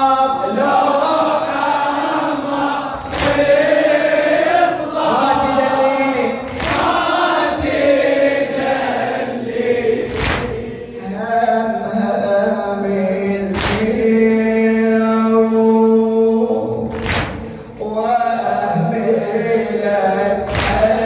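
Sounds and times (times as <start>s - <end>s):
men chanting in chorus: 0.0s - 21.0s
person chanting a lament into a microphone: 0.0s - 21.0s.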